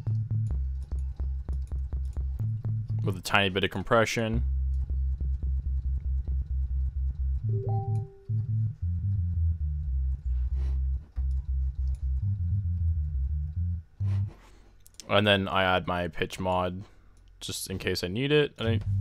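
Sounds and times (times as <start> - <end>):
synth sub bass notes: 11.6 - 14.4.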